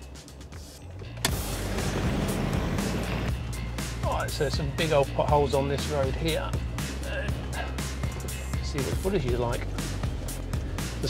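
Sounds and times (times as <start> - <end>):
background music: 0.0 - 11.0
car engine and tyre noise: 0.0 - 11.0.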